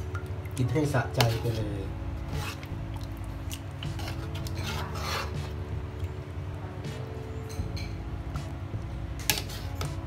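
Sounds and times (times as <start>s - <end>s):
metal ladle scraping a pot: 1.1s - 2.8s, 3.8s - 5.6s, 9.2s - 10.0s.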